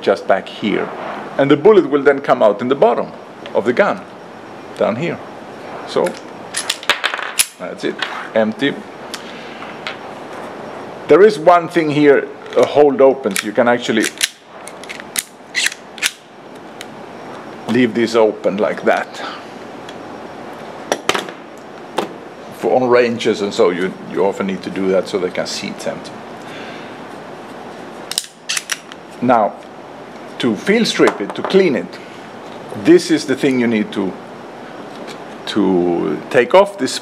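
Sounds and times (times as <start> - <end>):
steady hiss: 0.0 - 37.0
pistol action clicking: 13.4 - 16.2.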